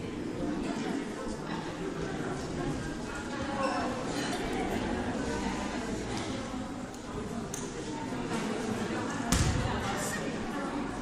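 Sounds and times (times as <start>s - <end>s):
ball thumping on gym floor: 9.3s - 9.9s.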